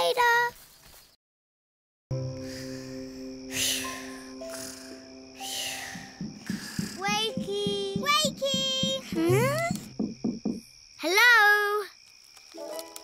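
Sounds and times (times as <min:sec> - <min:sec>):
soft background music: 0:02.1 - 0:09.9
slow breathy sleeping breath: 0:02.4 - 0:07.0.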